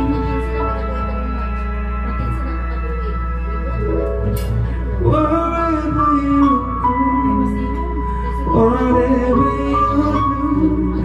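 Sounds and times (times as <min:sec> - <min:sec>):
slow ballad backing music: 0:00.0 - 0:11.0
steady low tone: 0:00.0 - 0:11.0.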